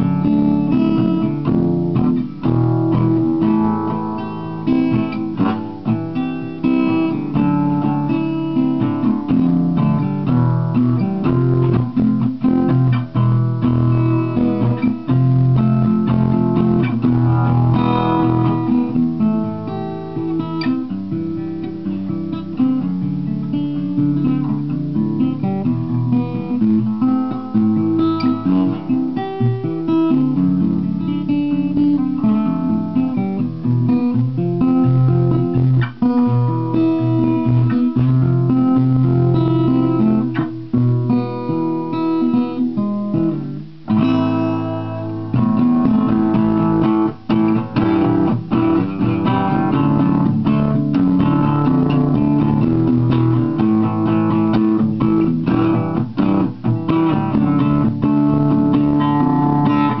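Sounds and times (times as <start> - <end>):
acoustic guitar playing: 0.0 - 60.0.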